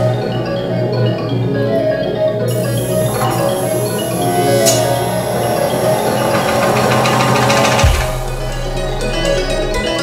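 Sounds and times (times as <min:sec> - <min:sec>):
band playing synthesizers: 0:00.0 - 0:10.0
fast ticking rhythm: 0:02.5 - 0:10.0.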